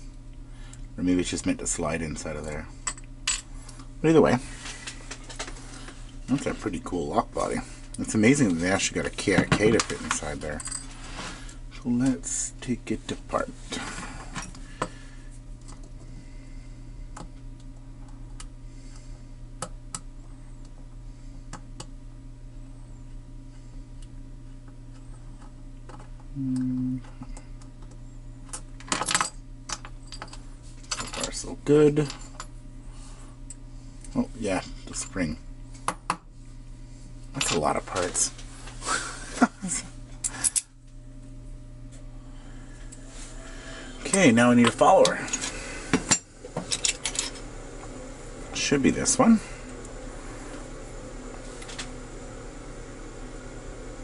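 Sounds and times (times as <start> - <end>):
low steady hum: 0.0 - 54.0
low hum: 29.4 - 54.0.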